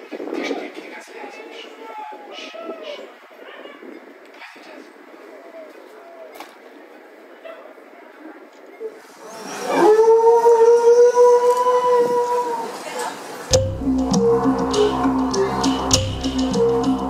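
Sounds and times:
crowd murmur: 12.2s - 17.0s
person singing a long note: 13.5s - 17.0s.

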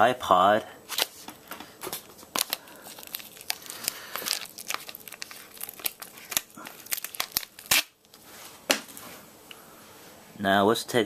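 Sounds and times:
plastic packaging crinkling: 0.9s - 9.0s.

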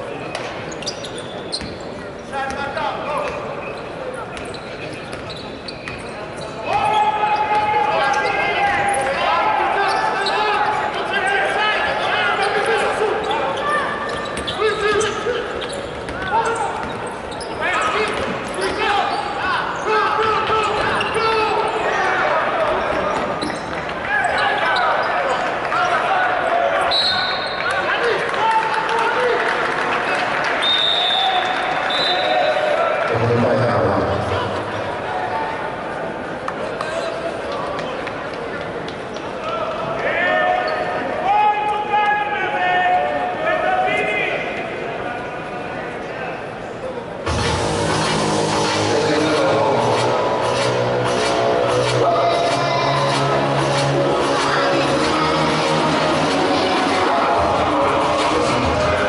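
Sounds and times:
crowd and player voices: 0.0s - 59.0s.

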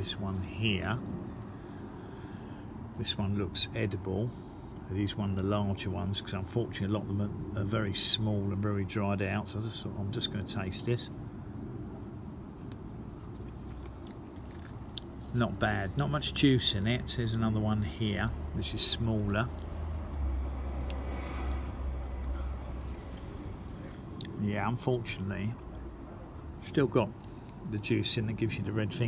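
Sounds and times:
low outdoor background rumble: 0.0s - 29.0s
person chewing: 13.3s - 15.3s
soft mouth clicks: 13.4s - 15.2s.

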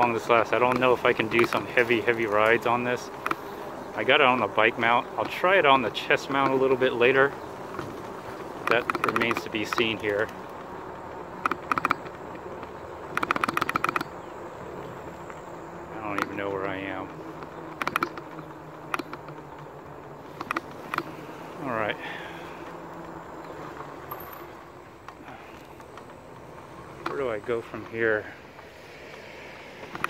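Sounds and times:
electric bike buzzing hum: 0.0s - 30.0s.

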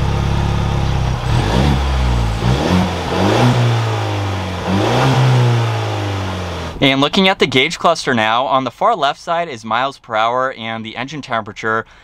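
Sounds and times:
truck engine idling and revving: 0.0s - 6.8s.

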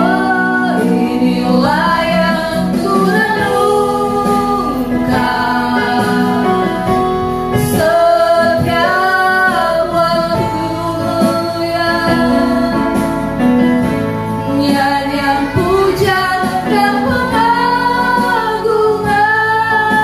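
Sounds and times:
electronic keyboard accompaniment: 0.0s - 20.0s
women singing into microphones: 0.0s - 20.0s.

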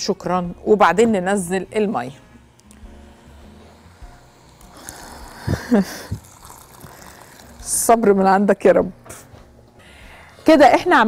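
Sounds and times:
water pouring into pot: 4.6s - 8.0s.

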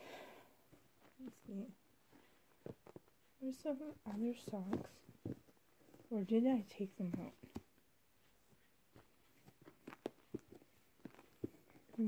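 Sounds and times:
clothes rustling: 0.0s - 12.0s.

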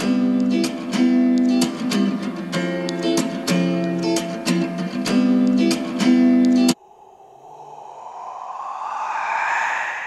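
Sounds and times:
breathy whoosh: 6.8s - 10.0s.

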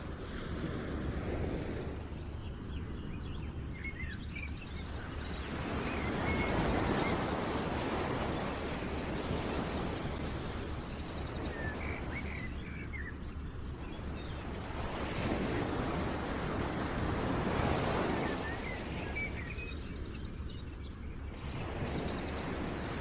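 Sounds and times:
bird chirps and trills: 0.0s - 23.0s
steady rushing noise: 0.0s - 23.0s.

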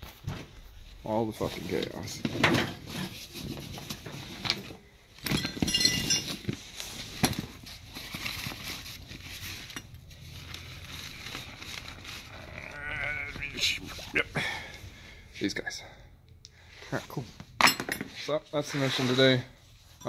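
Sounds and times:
rustling cloth: 6.2s - 14.1s.

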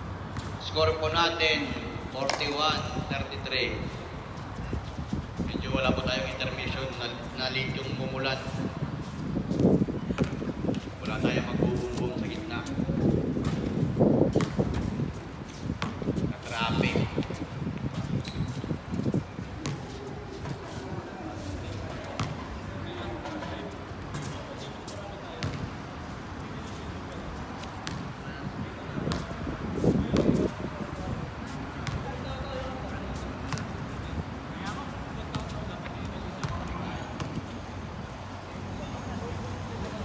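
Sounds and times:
basketball bouncing on court: 10.0s - 10.5s, 13.4s - 15.0s, 15.8s - 17.4s, 22.0s - 22.5s, 25.4s - 25.7s, 29.1s - 29.4s, 31.8s - 32.2s, 33.5s - 33.8s, 36.3s - 37.4s
background chatter: 16.2s - 40.0s.

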